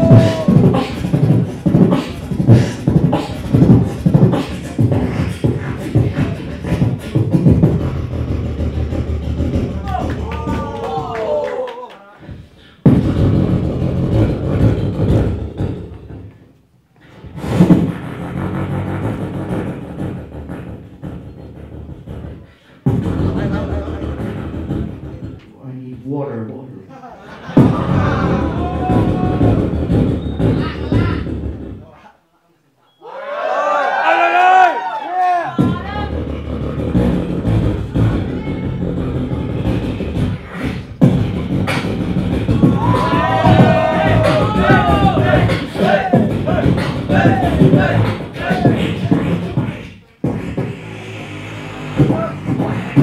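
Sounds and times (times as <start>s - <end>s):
beatboxer deep bass sound: 0.0s - 11.1s, 12.2s - 26.3s, 27.3s - 32.0s, 35.5s - 53.0s.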